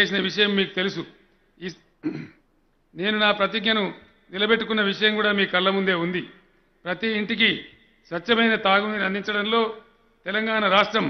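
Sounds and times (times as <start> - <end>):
man clearing his throat: 2.0 - 2.4.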